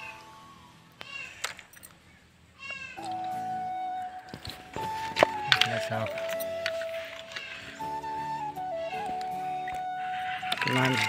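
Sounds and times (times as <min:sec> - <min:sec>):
background music: 0:00.0 - 0:01.9, 0:02.8 - 0:11.0.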